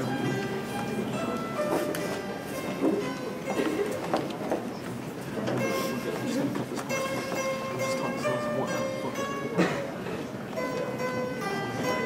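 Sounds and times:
plucked zither notes: 0:00.0 - 0:12.0.

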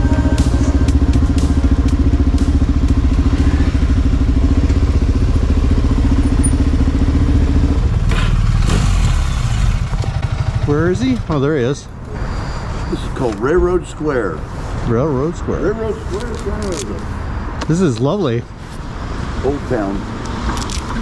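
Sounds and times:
motorcycle idling: 0:00.0 - 0:11.7.

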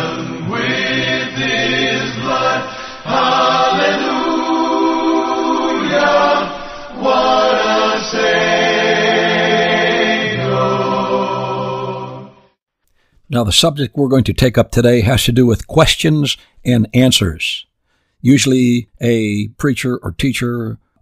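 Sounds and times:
choir singing a hymn: 0:00.0 - 0:12.5.

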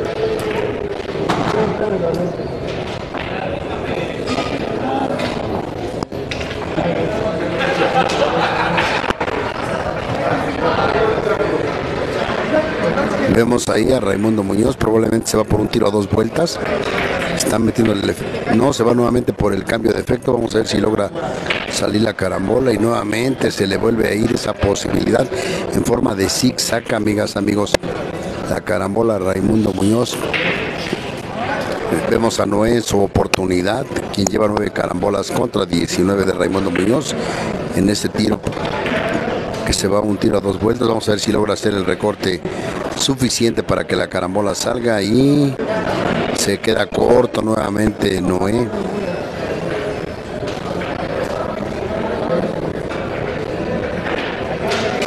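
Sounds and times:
murmur of voices: 0:00.0 - 0:55.0
spectators chattering: 0:00.0 - 0:55.0.

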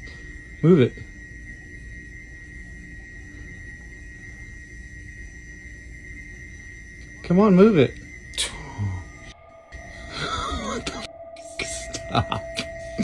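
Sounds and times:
low hum: 0:00.0 - 0:13.0
thin high steady tone: 0:00.0 - 0:13.0.

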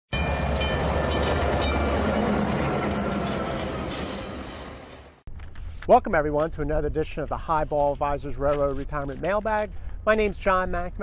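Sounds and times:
train rumbling on rails: 0:00.1 - 0:05.2.

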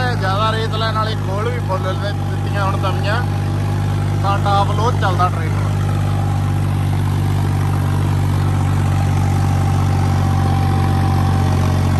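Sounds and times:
tractor diesel engine running: 0:00.0 - 0:11.9.

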